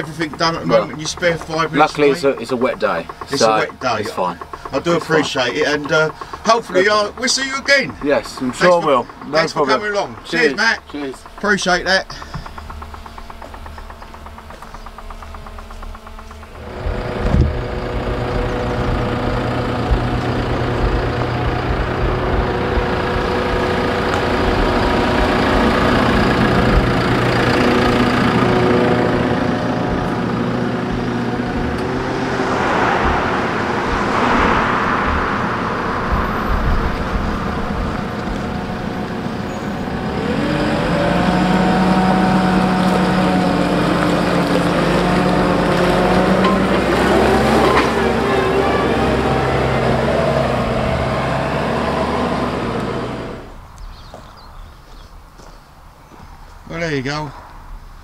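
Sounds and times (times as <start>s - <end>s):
diesel engine running: 0.0s - 55.5s
rushing noise: 16.6s - 42.8s.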